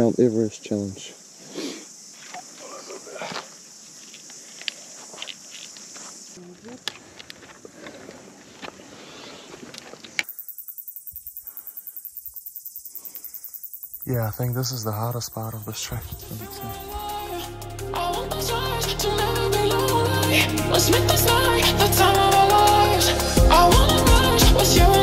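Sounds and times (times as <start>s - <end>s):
steady high hiss: 0.0s - 6.4s, 10.1s - 25.0s
footsteps on rock: 2.2s - 10.3s.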